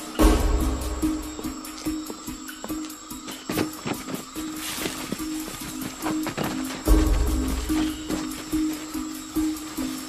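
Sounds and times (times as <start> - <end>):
action film score: 0.0 - 10.0.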